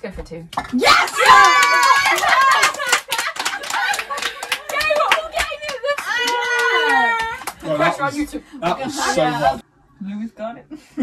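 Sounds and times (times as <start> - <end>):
women clapping: 0.7 - 8.0
women laughing and shouting: 0.8 - 7.5.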